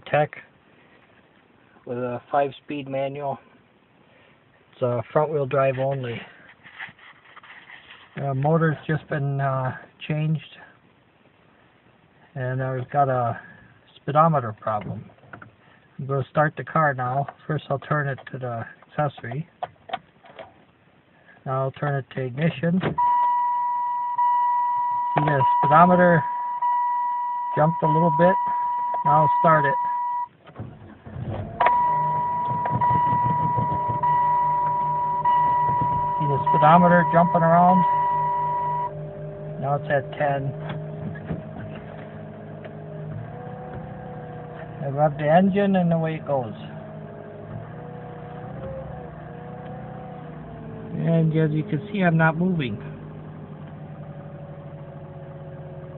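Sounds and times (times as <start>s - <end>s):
high-pitched electronic warning tone: 23.0s - 30.3s, 31.7s - 39.0s
car engine idling: 23.0s - 55.9s.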